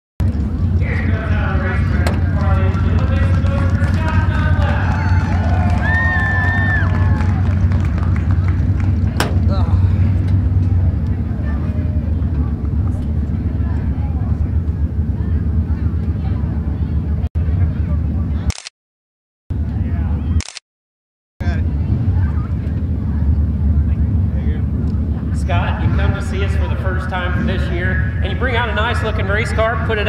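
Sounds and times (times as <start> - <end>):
indistinct voices talking: 0.2 - 18.5, 21.4 - 30.0
race car engines rumbling: 0.2 - 18.5, 19.5 - 20.4, 21.4 - 30.0.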